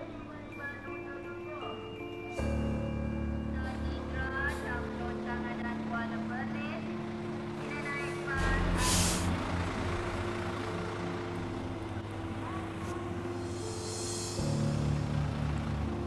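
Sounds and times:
coach engines idling: 0.0 - 16.0
air brakes hissing: 8.4 - 9.5, 12.8 - 14.9.

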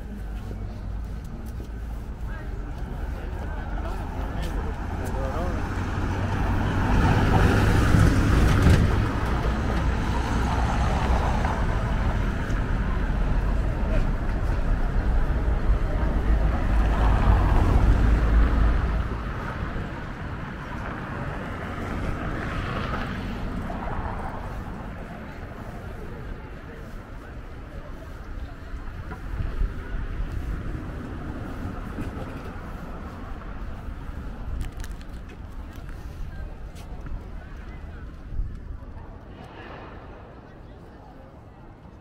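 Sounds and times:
voices talking: 0.0 - 10.5
traffic rumble: 0.0 - 42.0.

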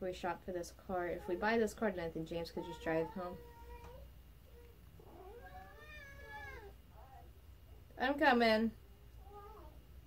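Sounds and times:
cat meowing: 5.1 - 6.7.

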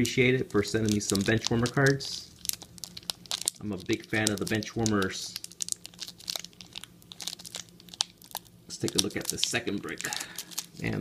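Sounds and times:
plastic card sleeve crinkling: 0.0 - 11.0.

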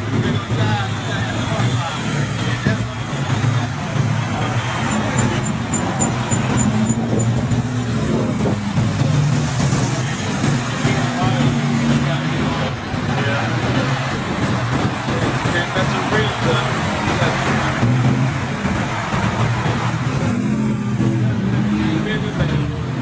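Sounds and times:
cars and trucks driving past: 0.0 - 23.0
voices in background: 0.0 - 23.0.

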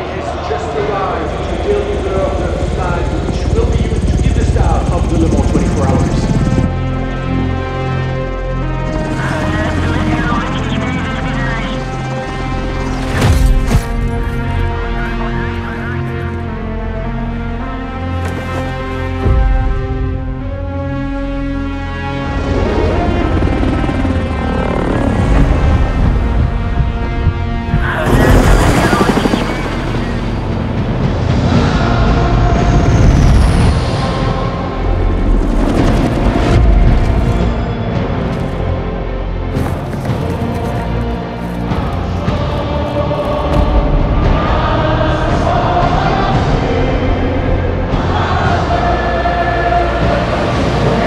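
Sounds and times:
helicopter rotor beating: 0.0 - 17.4, 22.0 - 33.0, 34.0 - 45.0
dramatic film score music: 0.0 - 51.0
person speaking: 27.8 - 30.4.

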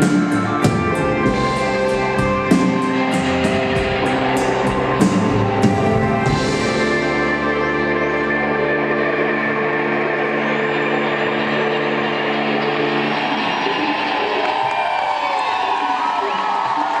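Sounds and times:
audience cheering and whooping: 9.8 - 17.0.

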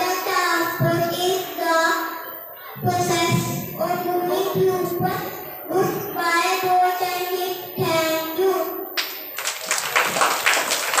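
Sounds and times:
child singing: 0.0 - 8.8
people clapping: 9.0 - 11.0.

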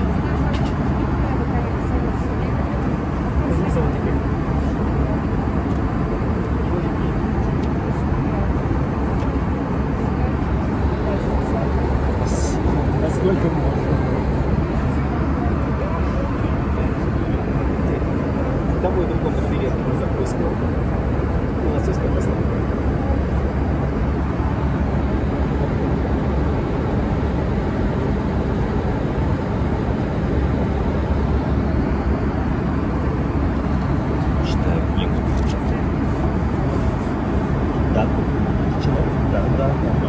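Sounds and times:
airliner cabin rumble: 0.0 - 40.0.

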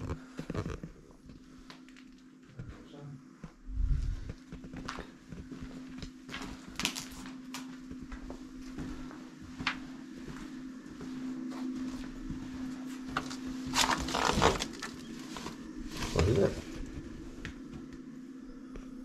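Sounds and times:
footsteps on debris-strewn floor: 0.0 - 18.0
steady low hum: 0.0 - 19.0.

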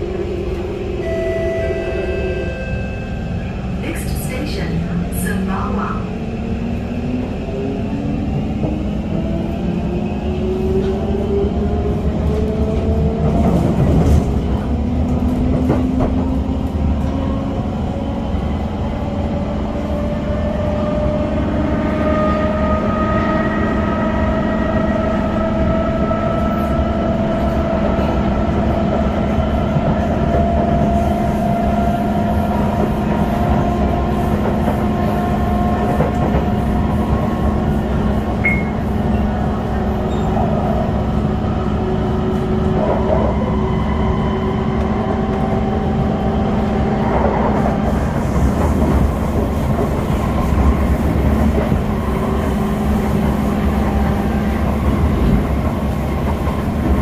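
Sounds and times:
wheels rumbling on rail: 0.0 - 57.0.

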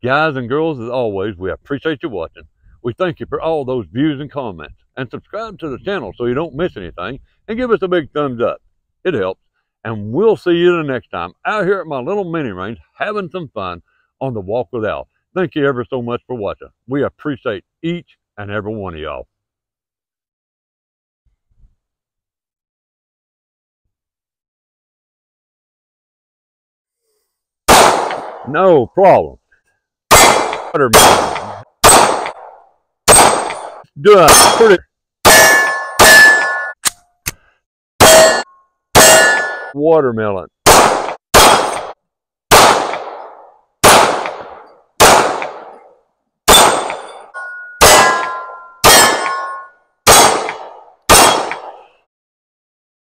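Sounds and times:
pistol shot with echo: 27.7 - 28.5, 30.1 - 34.7, 40.7 - 45.8, 46.5 - 47.2, 47.8 - 51.9
steel targets ringing: 35.3 - 36.8, 38.0 - 39.8, 46.5 - 49.8.

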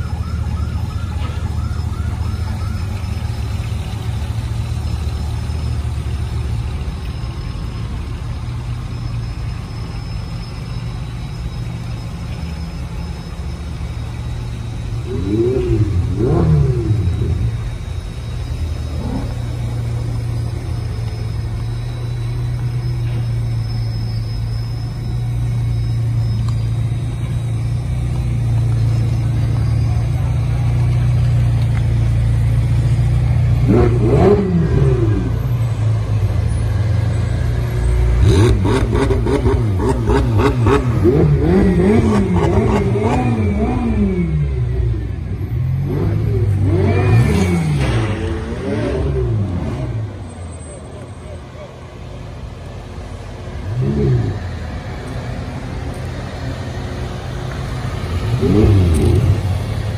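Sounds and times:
sports car engines revving: 0.0 - 59.9.

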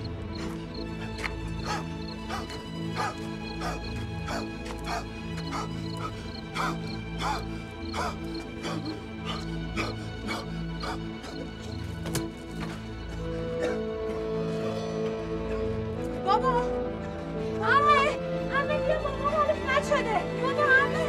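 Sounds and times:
sustained low film score tones: 0.0 - 21.0.

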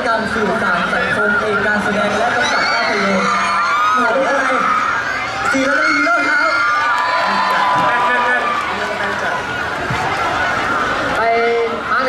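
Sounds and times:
audience voices: 0.0 - 12.0.

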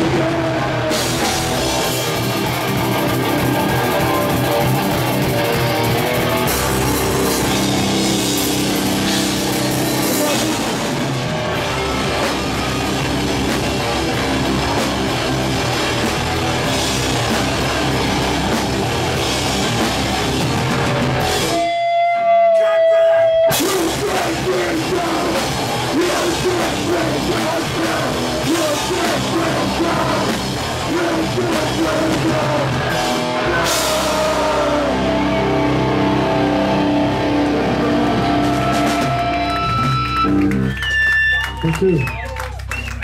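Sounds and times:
live rock band playing: 0.0 - 42.7.

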